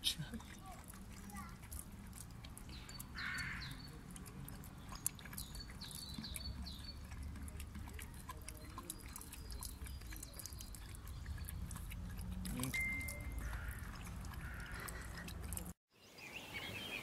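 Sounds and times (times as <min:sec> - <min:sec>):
dog licking wet clicks: 0:00.2 - 0:15.8
bird chirps: 0:04.8 - 0:07.2.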